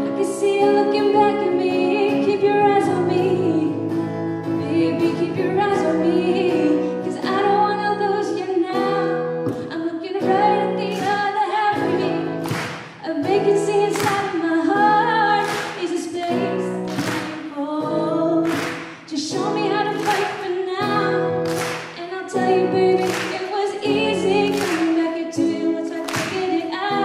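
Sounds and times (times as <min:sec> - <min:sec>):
acoustic guitar strumming: 0:00.0 - 0:27.0
woman singing into microphone: 0:00.0 - 0:27.0.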